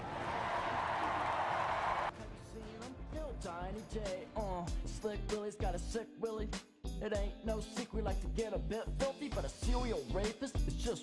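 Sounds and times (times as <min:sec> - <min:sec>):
large audience applauding: 0:00.0 - 0:02.2.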